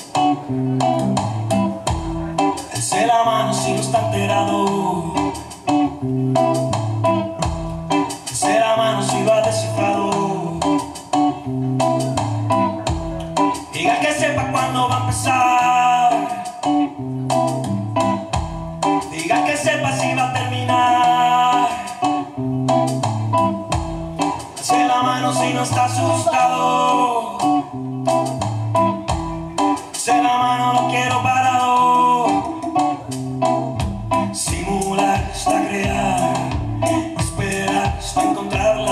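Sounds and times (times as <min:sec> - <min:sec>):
steady percussion beat: 0:00.0 - 0:15.4, 0:16.1 - 0:26.2, 0:27.4 - 0:31.0, 0:31.6 - 0:38.9
electric guitar lead lines: 0:00.0 - 0:38.9.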